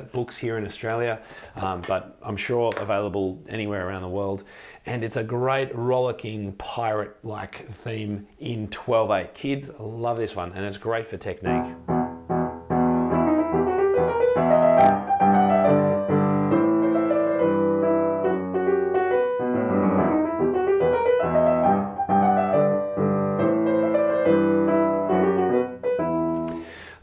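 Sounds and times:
upright piano rollicking tune: 0:10.4 - 0:26.9.

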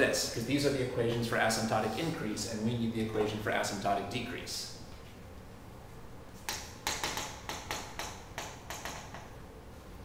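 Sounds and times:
chalk tapping on chalkboard: 0:06.4 - 0:09.3.

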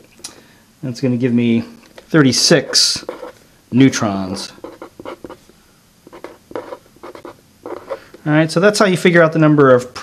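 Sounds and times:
felt-tip pen writing on paper: 0:04.6 - 0:05.4, 0:06.1 - 0:08.0.

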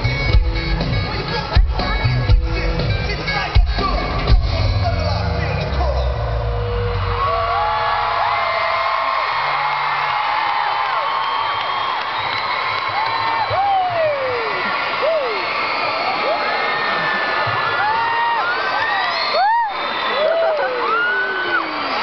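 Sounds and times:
band's held note and bass: 0:00.0 - 0:08.3
crowd screaming and cheering: 0:00.0 - 0:22.0.

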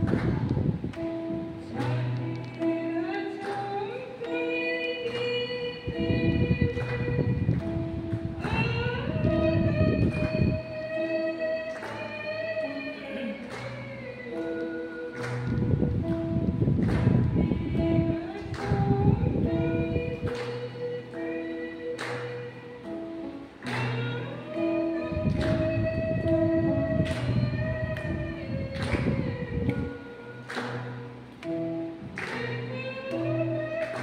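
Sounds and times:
woman singing: 0:00.0 - 0:34.0.

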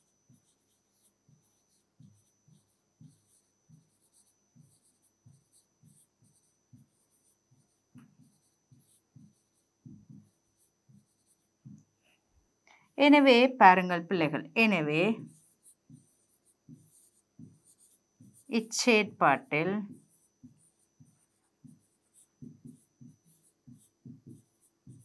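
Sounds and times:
pen tapping on whiteboard screen: 0:01.4 - 0:12.2, 0:15.2 - 0:18.5, 0:19.5 - 0:25.0.

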